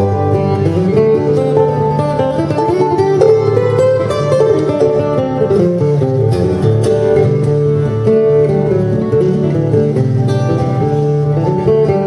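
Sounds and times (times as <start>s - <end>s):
acoustic guitar picking: 0.0s - 12.0s.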